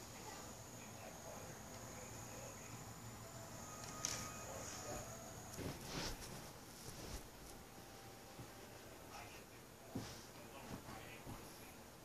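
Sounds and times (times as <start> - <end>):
faint high whine: 0.0 - 12.0
rustling bumps: 4.6 - 7.6.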